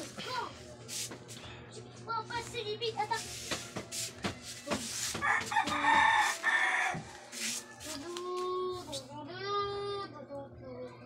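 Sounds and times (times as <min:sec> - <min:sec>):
rooster crowing: 0:05.2 - 0:08.0.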